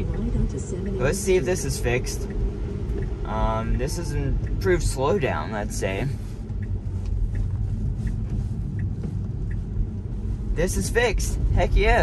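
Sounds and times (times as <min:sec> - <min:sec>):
faint ticks: 0:02.2 - 0:03.3, 0:06.1 - 0:10.4.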